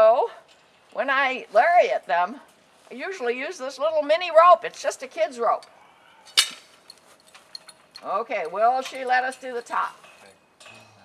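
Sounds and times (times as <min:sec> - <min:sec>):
metal tool clinking on ground: 0:06.3 - 0:10.3.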